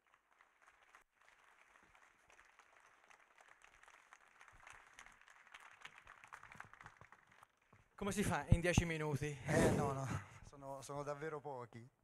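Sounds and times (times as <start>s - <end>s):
faint audience applause: 0.0s - 8.0s.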